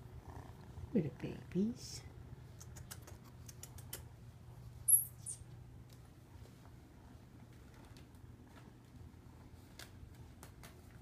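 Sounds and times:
kittens clicking and tapping: 2.5s - 4.2s, 9.6s - 11.0s
kitten squeaking: 4.9s - 5.5s.

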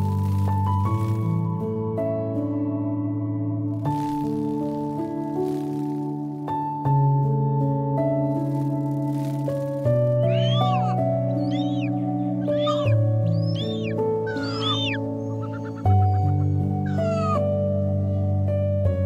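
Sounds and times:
calm music with sustained chords: 0.0s - 19.0s
eagle calling: 10.2s - 17.6s.

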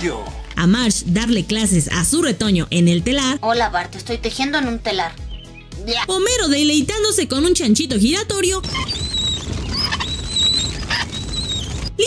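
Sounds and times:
high wavering squeaks: 8.4s - 12.0s.

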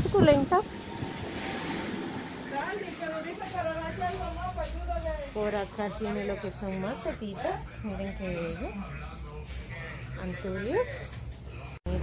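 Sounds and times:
steady rushing noise: 0.0s - 4.3s.

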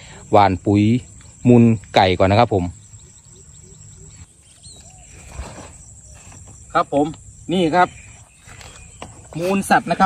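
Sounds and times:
insects droning: 0.0s - 10.0s
rustle: 4.2s - 7.1s.

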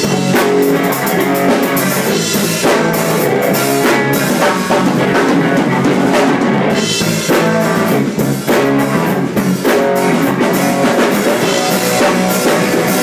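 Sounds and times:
drum and cymbal hits: 0.0s - 13.0s
electric bass: 0.0s - 13.0s
electric guitar: 0.0s - 13.0s.

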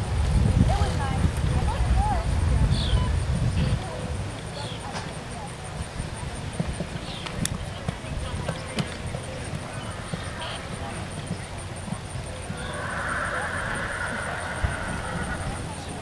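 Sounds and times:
horse hoofbeats on sand: 6.4s - 16.0s.

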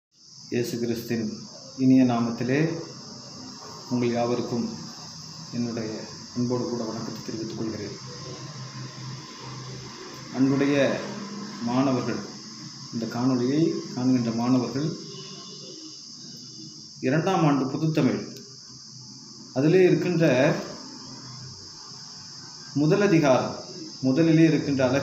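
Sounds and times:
high-pitched hiss: 0.2s - 25.0s
man speaking: 0.5s - 2.9s, 3.9s - 4.8s, 5.5s - 8.4s, 13.0s - 15.0s, 22.8s - 25.0s.

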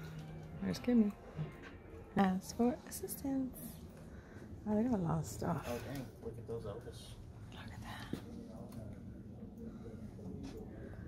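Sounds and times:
steady low hum: 0.0s - 11.0s
faint indistinct voices: 7.5s - 11.0s.

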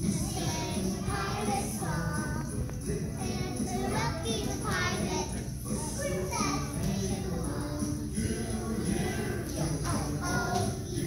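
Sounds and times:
background music: 0.0s - 11.0s
children singing: 0.0s - 11.0s.

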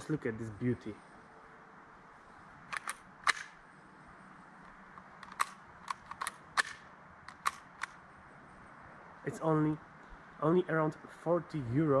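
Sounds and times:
pistol parts clicking: 2.6s - 3.6s, 4.6s - 8.0s.

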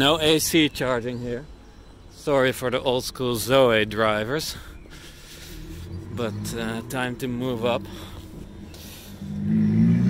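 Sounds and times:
car engine driving by: 5.4s - 10.0s.

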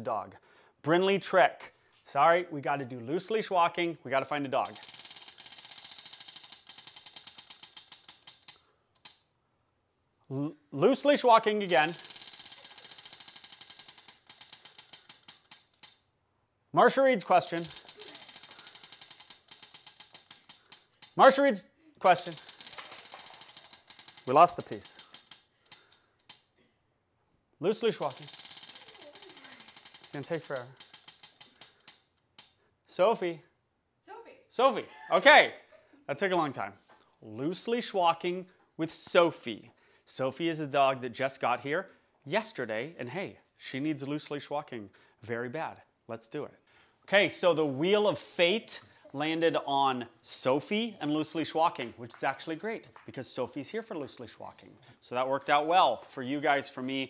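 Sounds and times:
prize wheel flapper clicking: 4.6s - 9.3s, 11.1s - 16.1s, 16.9s - 26.5s, 27.7s - 32.6s.

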